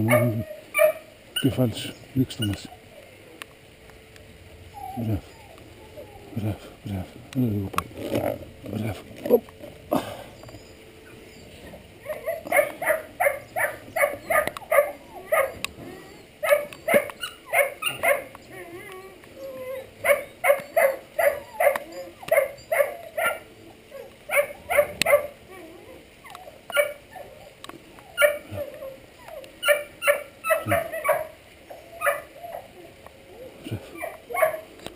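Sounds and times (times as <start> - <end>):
puppy yipping and whimpering: 0.0 - 1.6, 4.7 - 6.4, 10.3 - 34.7.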